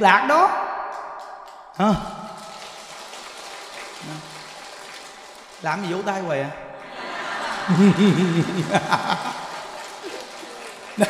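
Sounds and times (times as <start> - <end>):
audience clapping: 1.2 - 11.0.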